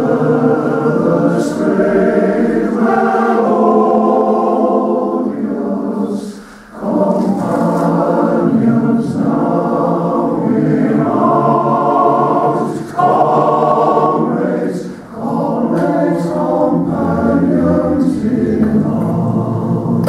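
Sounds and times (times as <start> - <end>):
male choir singing: 0.0 - 20.0.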